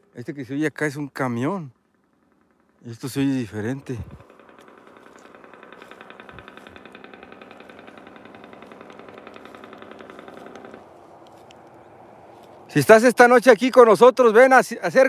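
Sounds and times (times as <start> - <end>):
distant diesel truck engine: 0.0 - 13.4.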